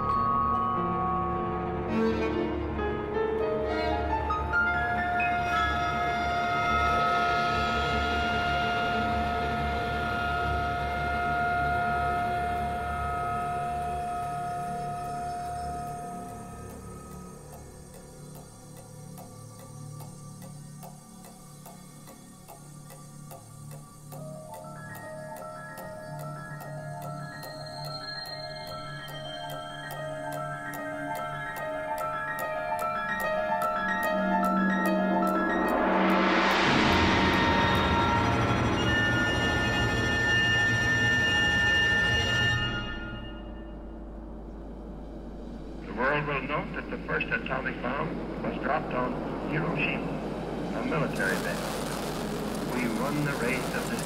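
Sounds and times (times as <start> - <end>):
clock-like ticking: 12.4 - 37.9, 50.8 - 54.0
low rumble: 43.8 - 54.0.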